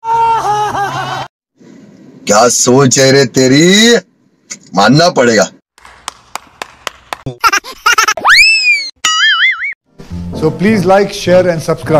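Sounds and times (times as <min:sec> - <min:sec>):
hand claps: 0:05.8 - 0:07.4
swooping cartoon tone: 0:08.2 - 0:09.8.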